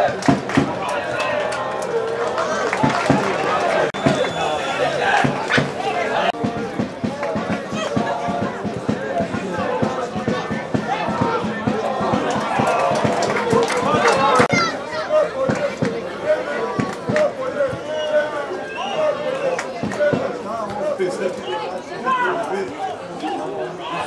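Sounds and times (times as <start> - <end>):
players shouting: 0.0 - 24.0.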